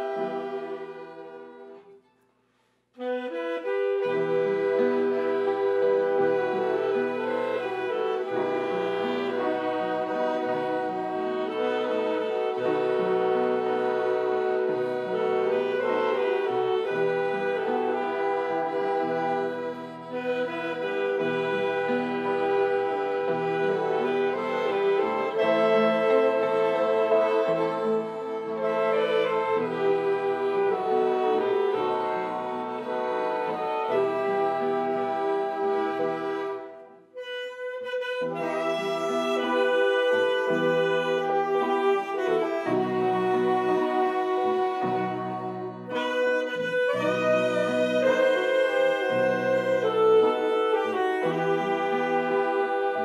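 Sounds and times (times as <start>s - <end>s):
saxophones: 0.0s - 2.1s, 3.0s - 53.0s
slow instrumental ensemble music: 0.0s - 2.3s, 3.0s - 53.0s.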